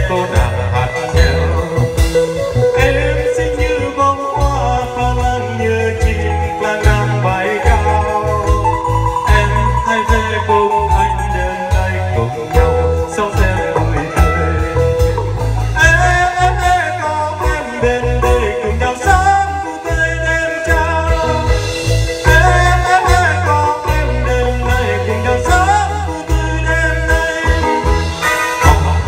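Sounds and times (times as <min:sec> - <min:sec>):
live pop band playing: 0:00.0 - 0:29.0
man singing into a microphone: 0:00.0 - 0:29.0.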